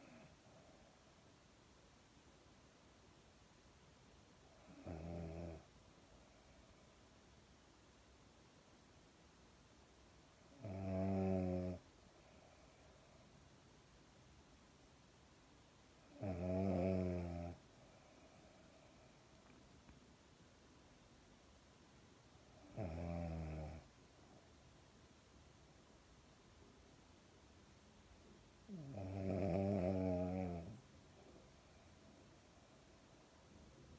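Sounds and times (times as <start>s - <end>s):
dog snoring: 4.6s - 5.7s, 10.5s - 11.8s, 16.0s - 18.6s, 22.6s - 23.9s, 28.7s - 30.8s.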